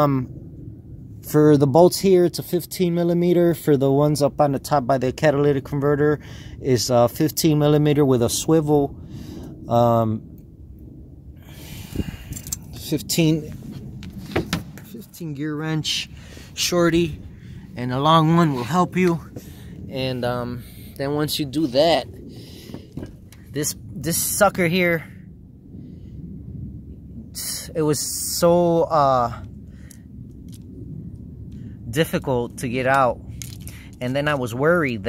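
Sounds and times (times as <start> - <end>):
low background rumble: 0.0 - 35.0
man breathing in: 6.2 - 6.6, 9.0 - 9.6, 11.4 - 12.6, 16.2 - 16.6, 22.2 - 23.0
person speaking: 14.6 - 22.2.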